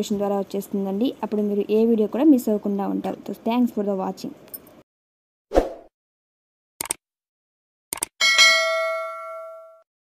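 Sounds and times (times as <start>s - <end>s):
bright bell chime: 8.2s - 9.8s.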